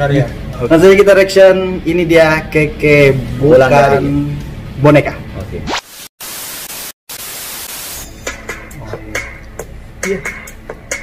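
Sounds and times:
television static hiss: 5.5s - 8.1s.

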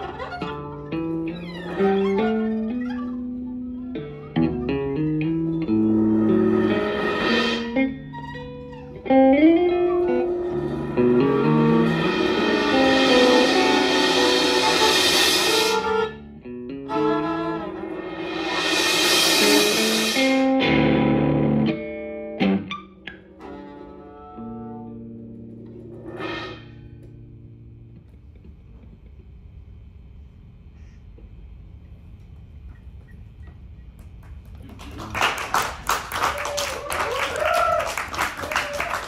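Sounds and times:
guitar viola and drums playing: 0.0s - 27.7s.

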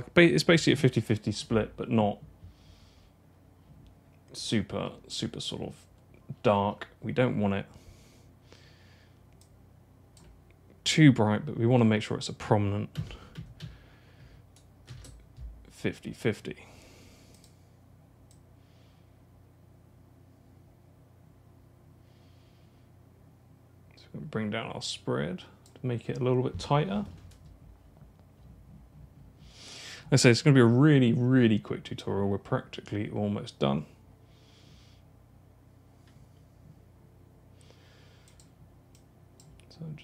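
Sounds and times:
faint mouse clicks: 9.3s - 9.6s, 17.3s - 17.6s, 38.2s - 39.7s.

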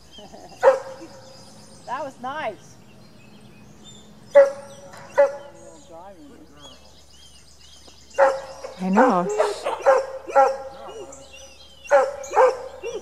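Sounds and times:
dog barking: 0.6s - 1.2s, 4.3s - 5.6s, 8.2s - 11.2s, 11.9s - 13.0s
quieter dog calls: 4.2s - 5.8s, 8.2s - 13.0s.

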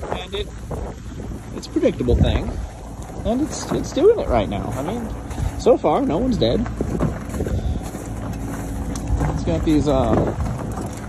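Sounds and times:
tyres rumbling on gravel: 0.0s - 11.0s
wind on microphone: 0.0s - 11.0s.

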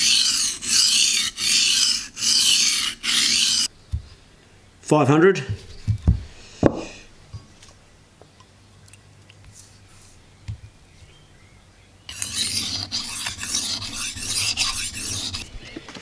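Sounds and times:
knife scraping on whetstone: 0.0s - 3.7s, 12.1s - 15.5s.

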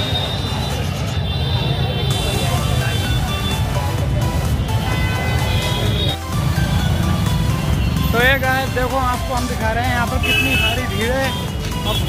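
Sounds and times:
hubbub of large crowd: 0.0s - 12.0s
music playing: 0.0s - 12.0s.

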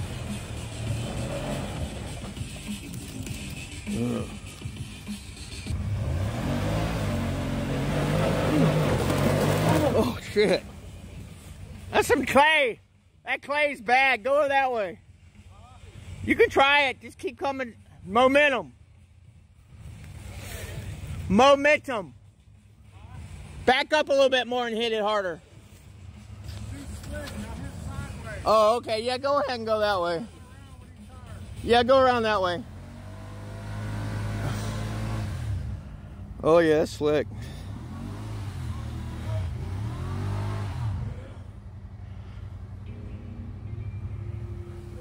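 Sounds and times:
off-road vehicle engine rumble: 0.0s - 45.0s.

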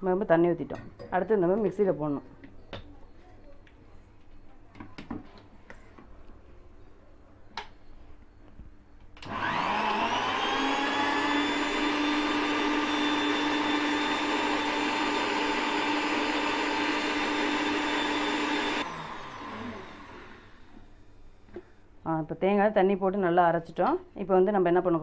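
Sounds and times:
mixer grinder motor whining: 9.2s - 20.8s.

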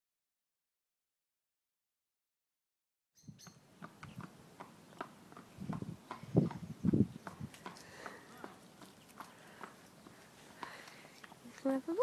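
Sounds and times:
horse hooves: 3.4s - 12.0s.

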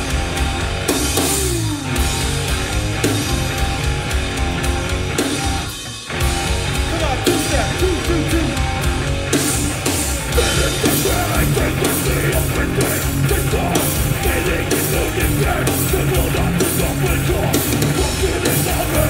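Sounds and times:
hardcore band playing: 0.0s - 19.0s.

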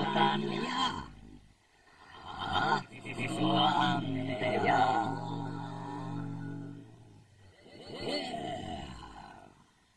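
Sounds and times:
distorted voice-like roar: 0.0s - 1.2s, 2.2s - 7.2s.

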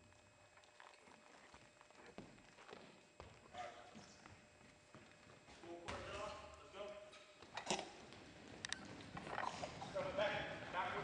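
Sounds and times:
sneaker footfalls on gym floor: 1.5s - 6.6s.

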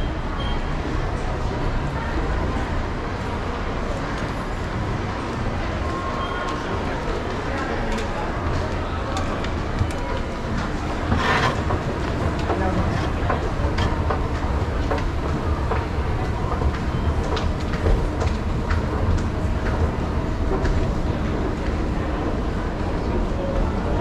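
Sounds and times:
clicks and clatter of moving steps: 5.2s - 22.4s
escalator rumbling: 9.4s - 23.8s.

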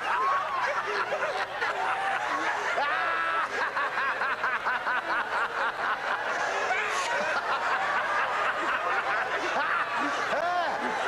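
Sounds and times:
crowd laughing: 0.0s - 11.0s
person laughing rhythmically: 0.0s - 11.0s.

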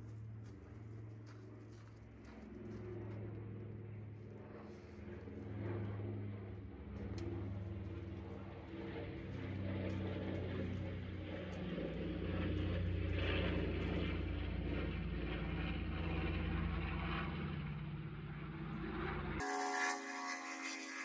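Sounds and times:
low engine-like drone: 0.0s - 21.0s
thin high hum: 19.4s - 21.0s.

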